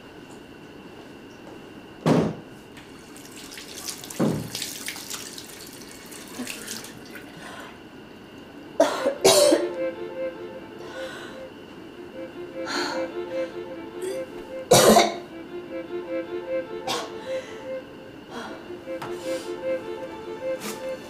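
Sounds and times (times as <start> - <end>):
splashing hands washing: 3.0 - 7.4
tap water running into basin: 3.0 - 7.4.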